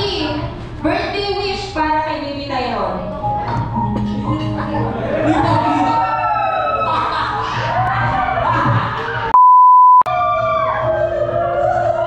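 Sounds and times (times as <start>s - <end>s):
music with gliding notes: 3.0s - 6.0s
loud electronic beep: 9.4s - 10.1s.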